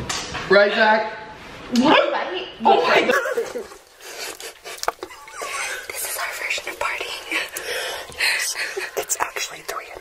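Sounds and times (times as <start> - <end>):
person whispering: 5.6 - 10.0.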